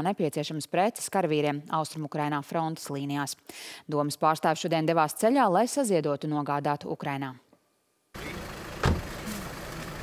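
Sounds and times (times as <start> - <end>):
car running: 8.2 - 10.0
street noise: 8.2 - 10.0
sharp thump: 8.8 - 9.3.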